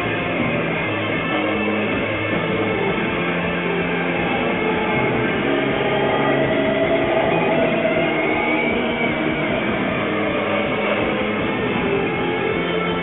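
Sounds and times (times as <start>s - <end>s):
distorted electric guitars droning: 0.0s - 13.0s
steady low pulse: 0.0s - 13.0s.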